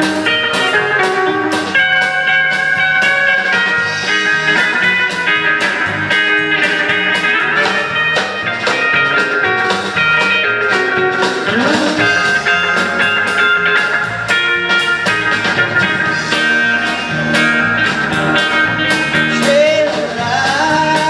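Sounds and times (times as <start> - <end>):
drum kit beat: 0.0 - 21.0
electric guitar: 0.0 - 21.0.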